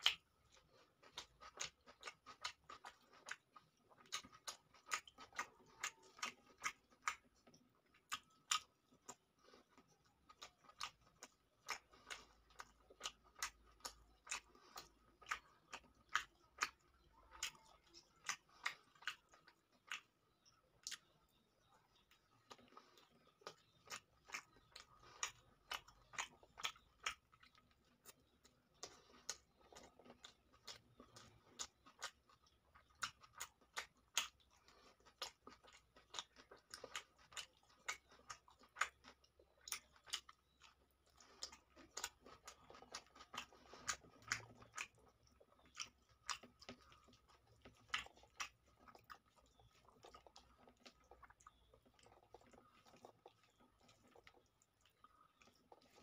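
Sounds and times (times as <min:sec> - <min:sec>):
chewing with wet mouth clicks: 0:00.0 - 0:56.0.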